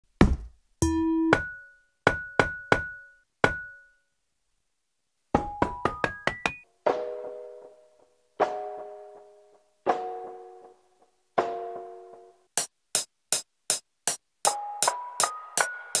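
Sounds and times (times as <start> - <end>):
knock: 0.2 - 0.5, 5.4 - 6.6.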